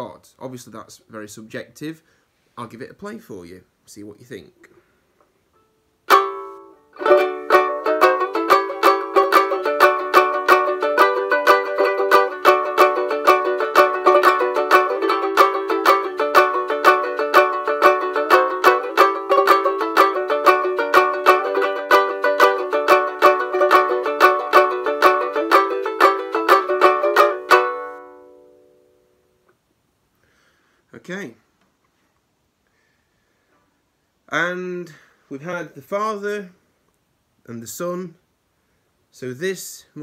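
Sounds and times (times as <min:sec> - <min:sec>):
banjo ukulele strumming chords: 0:06.1 - 0:29.1.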